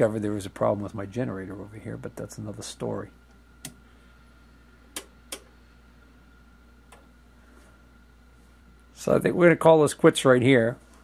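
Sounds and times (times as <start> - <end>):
faint steady hum: 0.0 - 11.0
rotary switch clicking: 5.0 - 5.5.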